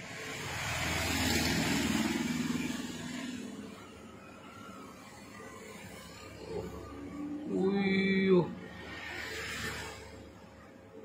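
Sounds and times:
motor vehicle passing by: 0:00.0 - 0:11.0.

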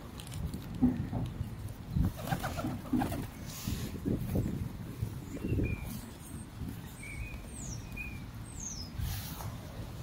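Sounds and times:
pigeon wingbeats: 0:02.0 - 0:03.4.

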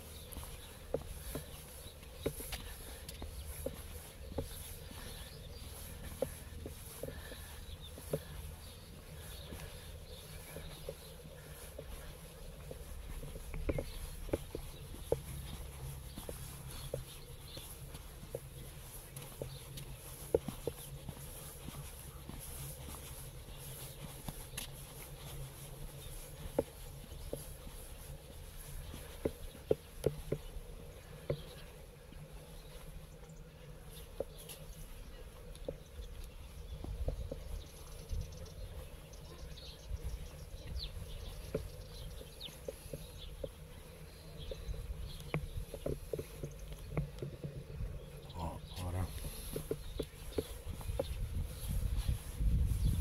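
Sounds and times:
light ticks and taps: 0:28.6 - 0:31.7
wind rumble on microphone: 0:35.1 - 0:43.4, 0:44.1 - 0:53.0.

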